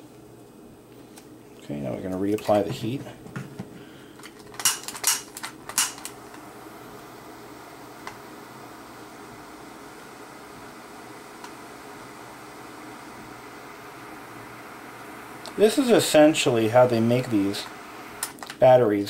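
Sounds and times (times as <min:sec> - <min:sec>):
torch flame hissing: 0:04.7 - 0:19.0.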